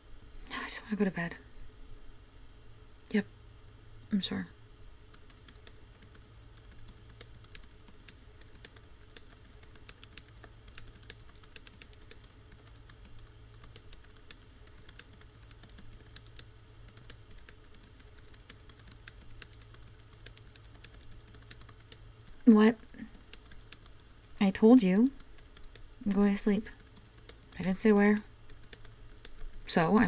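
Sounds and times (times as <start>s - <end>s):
low steady hum: 0.0s - 30.0s
typing on computer keyboard: 5.1s - 22.4s, 23.0s - 30.0s.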